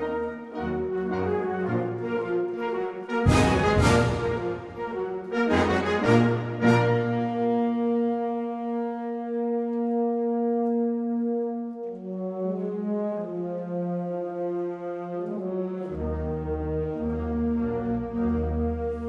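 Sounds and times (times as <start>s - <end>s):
wind band playing: 0.0s - 19.0s.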